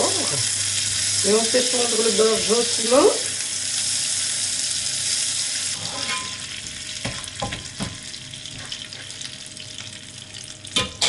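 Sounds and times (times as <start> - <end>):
butter sizzling in a pan: 0.0 - 11.0
spatula knocking and scraping pan: 7.0 - 8.0.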